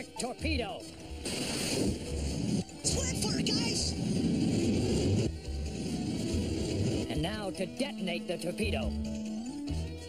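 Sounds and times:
action music score: 0:00.0 - 0:10.0.

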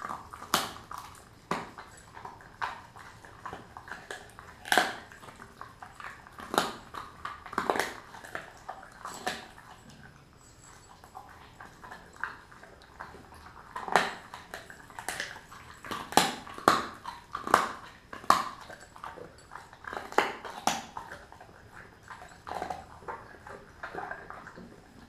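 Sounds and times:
dog chewing bone: 0:00.0 - 0:25.0
teeth crunching on bone: 0:00.0 - 0:25.0.

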